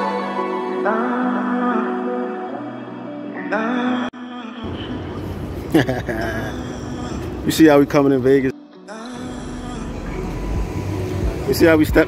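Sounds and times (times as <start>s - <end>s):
traffic rumble: 4.6s - 8.5s, 9.2s - 12.0s.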